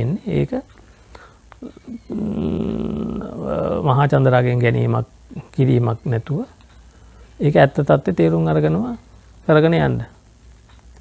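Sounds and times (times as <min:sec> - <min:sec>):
man speaking: 0:00.0 - 0:00.7, 0:01.6 - 0:06.6, 0:07.4 - 0:10.2.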